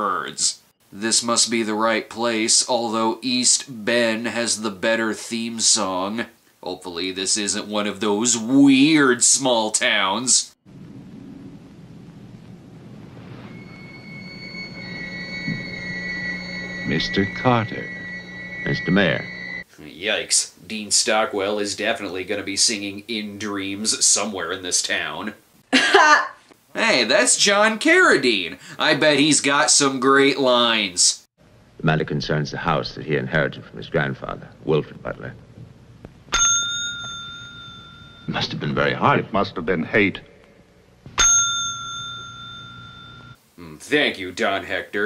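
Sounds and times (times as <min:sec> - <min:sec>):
low hum: 0:10.7 - 0:19.6, 0:37.1 - 0:43.4
high-pitched tonal drone: 0:13.1 - 0:19.6
desk call bell ringing: 0:13.6 - 0:19.6, 0:36.3 - 0:38.4, 0:41.2 - 0:43.4.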